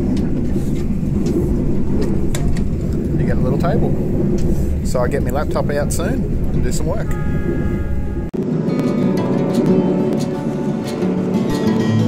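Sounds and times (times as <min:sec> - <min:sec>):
train carriage rumbling on track: 0:00.0 - 0:12.0.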